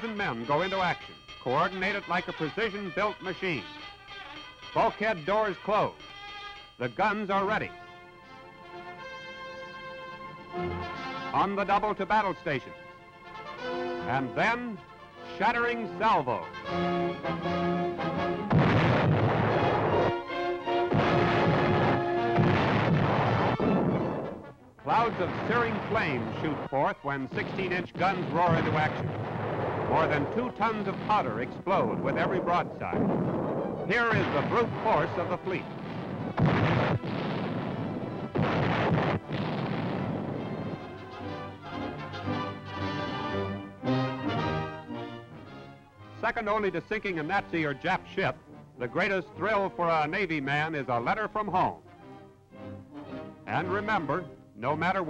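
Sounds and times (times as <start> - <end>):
newsreel music: 0.0 - 55.0
loud gun blasts: 18.4 - 42.2
heavy rumbling: 18.5 - 20.2, 20.8 - 41.6.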